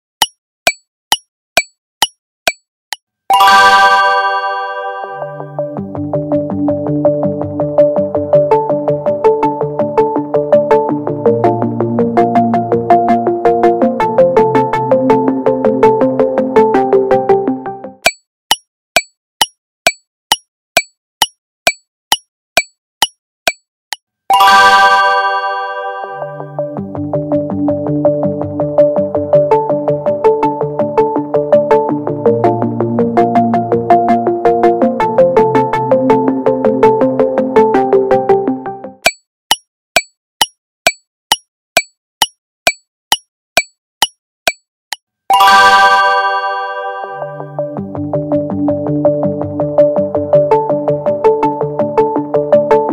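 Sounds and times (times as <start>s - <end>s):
clock-like timer ticks: 0.2s - 3.0s, 18.0s - 24.0s, 39.0s - 45.0s
bright chime chord with splash: 3.3s - 5.2s.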